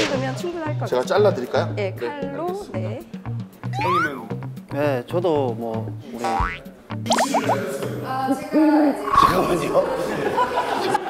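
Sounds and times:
background music: 0.0 - 11.0
quick rising blips: 6.3 - 7.6.

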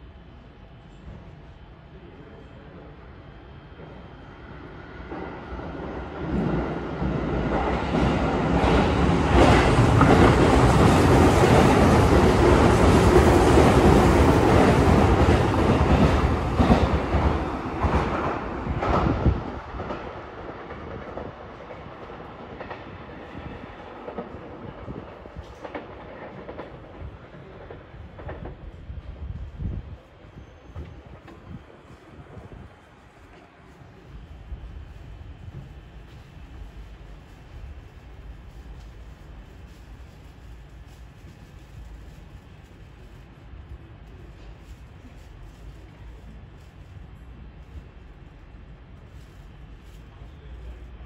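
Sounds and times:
electric train rumbling past: 0.0 - 51.0.

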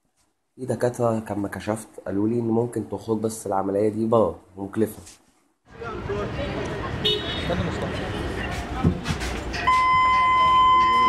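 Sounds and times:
metal detector alarm beep: 9.7 - 11.0.

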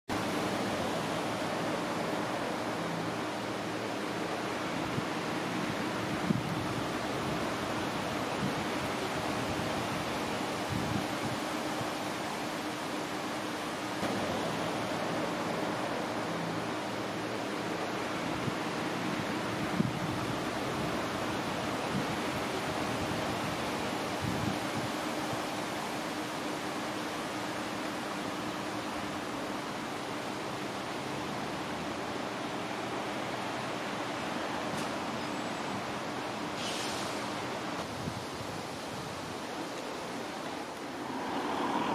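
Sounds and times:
steady rushing noise: 35.8 - 41.9.

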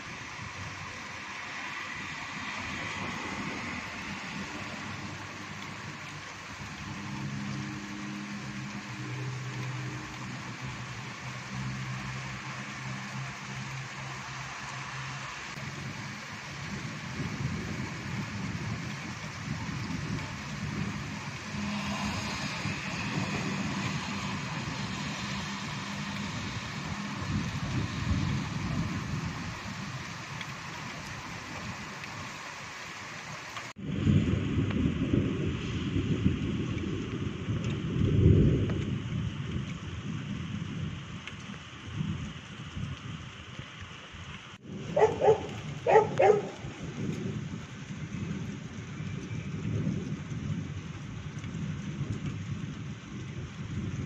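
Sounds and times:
rain: 0.0 - 54.0
rumble of thunder: 33.8 - 41.0.

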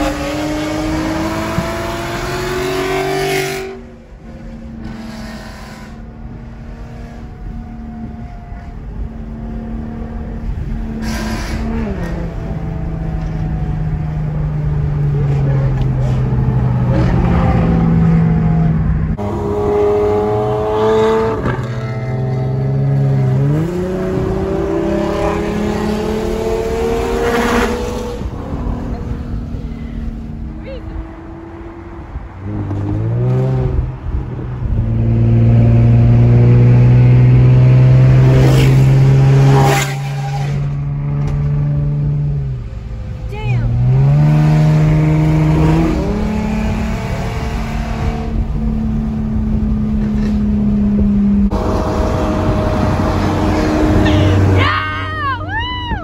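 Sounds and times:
sports car accelerating: 0.0 - 54.7.

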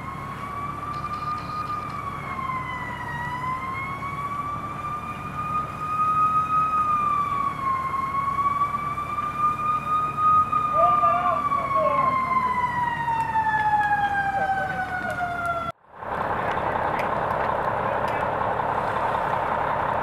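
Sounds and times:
emergency siren wailing: 0.0 - 20.0.

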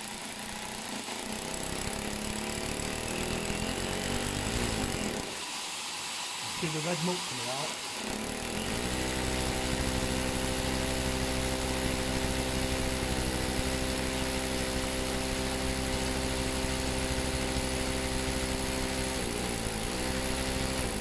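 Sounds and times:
hammer drill boring into brick: 0.0 - 21.0
vacuum cleaner: 0.0 - 21.0.

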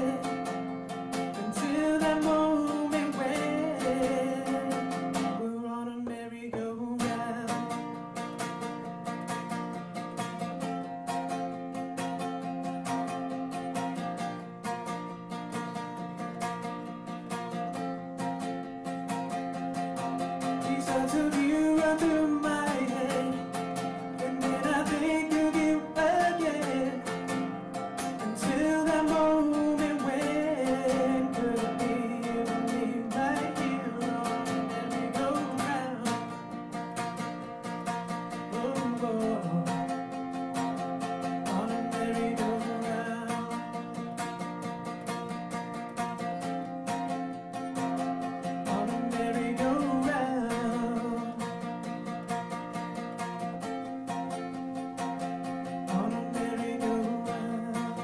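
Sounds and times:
man singing: 0.0 - 8.2, 20.0 - 44.3, 47.8 - 51.9, 54.1 - 58.0
acoustic guitar: 0.0 - 58.0.

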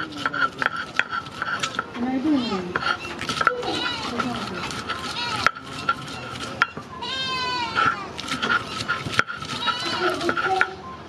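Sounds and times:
stone roller knocking on stone: 0.0 - 1.9, 2.7 - 6.8, 7.8 - 10.7
goat bleating: 3.5 - 4.3, 5.0 - 5.5, 7.0 - 8.1, 9.6 - 10.4.

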